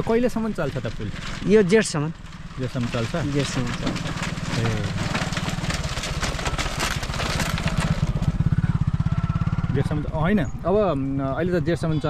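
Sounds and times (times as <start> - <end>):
bamboo slats clattering: 0.0 - 8.4
small motorcycle engine passing: 0.0 - 12.0.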